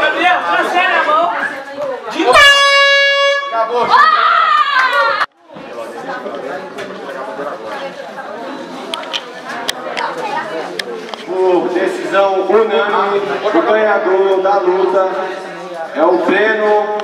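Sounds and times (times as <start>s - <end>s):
crowd chatter and shouting: 0.0s - 17.0s
air horn steady tone: 2.2s - 3.8s.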